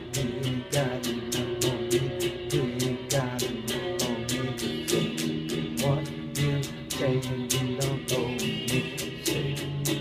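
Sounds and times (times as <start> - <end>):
electric guitar strummed: 0.0 - 10.0.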